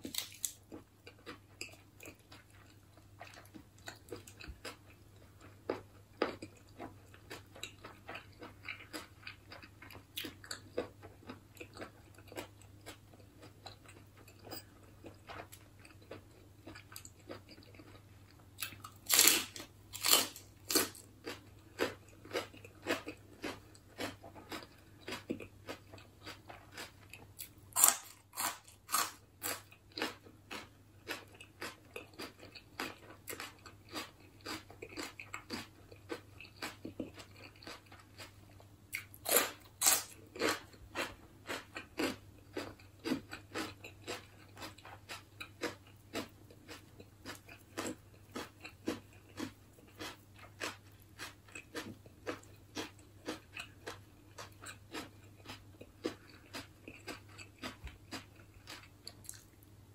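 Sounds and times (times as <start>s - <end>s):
chewing crisp lettuce: 0.0s - 59.6s.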